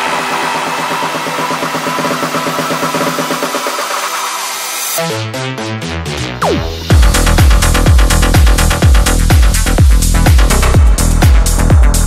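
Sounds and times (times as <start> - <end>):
buzzy synth pulsing: 5.0 - 10.7.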